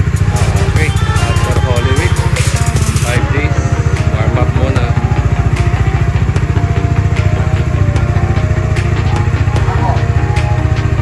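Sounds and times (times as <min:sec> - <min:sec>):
background music with melody: 0:00.0 - 0:11.0
motorcycle engine idling: 0:00.0 - 0:11.0.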